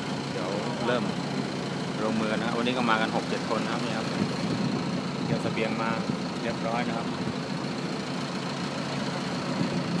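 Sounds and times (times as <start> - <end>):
generator engine droning: 0.0 - 10.0.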